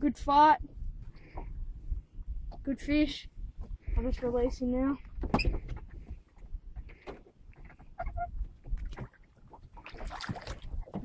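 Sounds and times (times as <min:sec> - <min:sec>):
water splash: 0:08.8 - 0:11.0.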